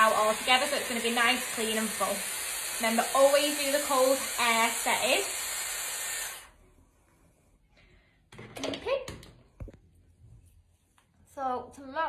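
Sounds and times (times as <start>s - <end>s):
hair styler blowing air: 0.0s - 6.7s.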